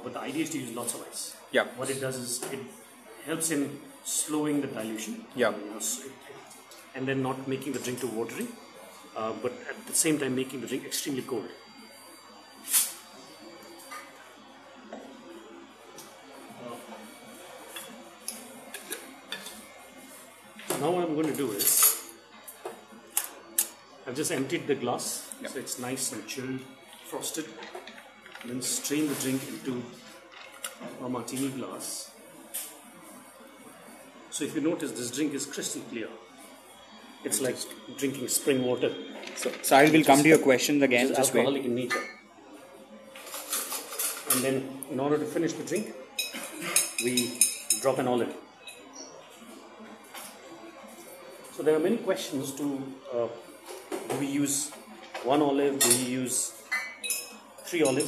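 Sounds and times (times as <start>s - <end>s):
glassware clinking: 41.9s - 42.2s, 45.7s - 47.9s, 55.8s - 56.1s, 56.7s - 58.0s
ice and glassware clinking: 56.7s - 58.0s.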